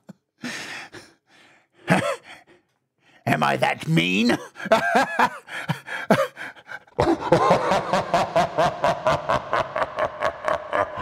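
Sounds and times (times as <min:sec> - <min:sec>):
person laughing: 0:04.6 - 0:06.4, 0:07.0 - 0:11.0.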